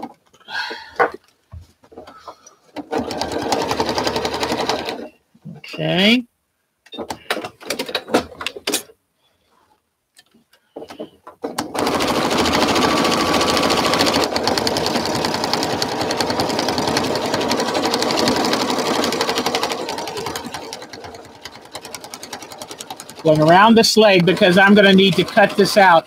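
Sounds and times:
sewing machine stitching: 0:02.8 - 0:05.2, 0:11.4 - 0:26.0
sewing machine clicks: 0:11.5 - 0:25.9.

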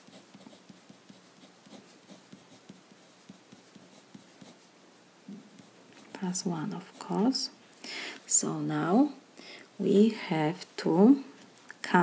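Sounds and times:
marker pen scratching on paper: 0:00.0 - 0:04.7, 0:05.4 - 0:07.4.

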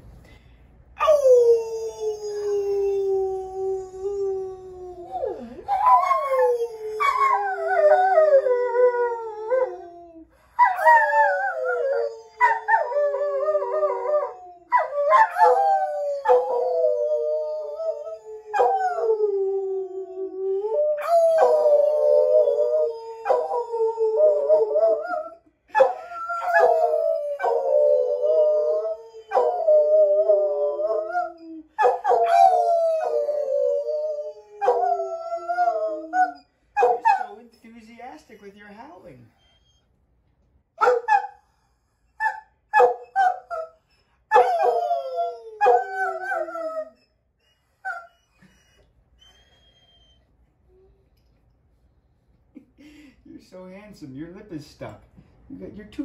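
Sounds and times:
dog howling: 0:01.0 - 0:37.3, 0:44.3 - 0:47.0
man howling: 0:32.2 - 0:36.4.

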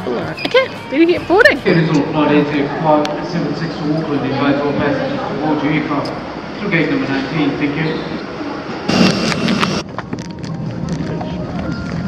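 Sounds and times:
indistinct voices and bustle: 0:00.0 - 0:12.0
faint steady whine: 0:06.0 - 0:10.8
aircraft cabin hum: 0:08.9 - 0:09.8.

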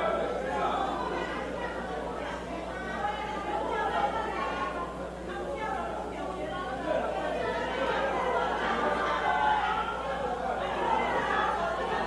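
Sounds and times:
indistinct chatter of many voices: 0:00.0 - 0:12.0.

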